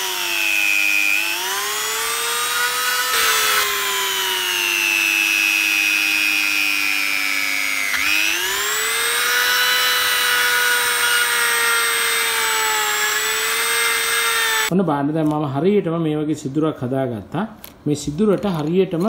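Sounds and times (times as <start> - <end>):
rotary tool grinding wood: 0.0 - 14.7.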